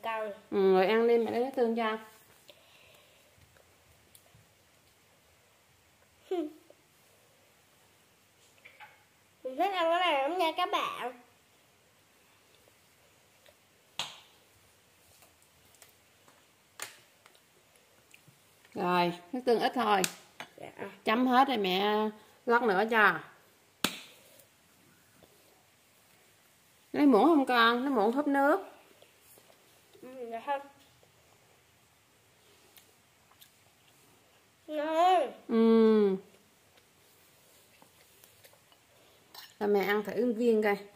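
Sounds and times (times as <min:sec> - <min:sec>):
person humming: 0:35.5 - 0:36.2.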